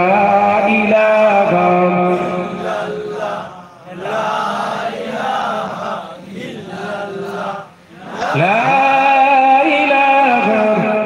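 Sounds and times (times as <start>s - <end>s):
man chanting into microphone: 0.0s - 3.7s, 6.9s - 11.0s.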